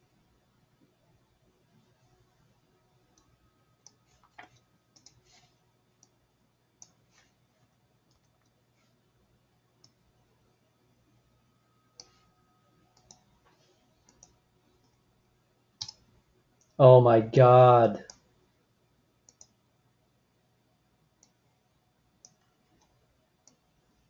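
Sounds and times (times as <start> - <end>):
computer mouse clicks: 3.1 - 6.2, 6.8 - 7.4, 8.1 - 8.6, 9.8 - 10.0, 12.0 - 12.3, 12.9 - 15.0, 15.8 - 16.8, 19.3 - 19.6, 22.2 - 23.7
man exclaiming: 16.8 - 18.0.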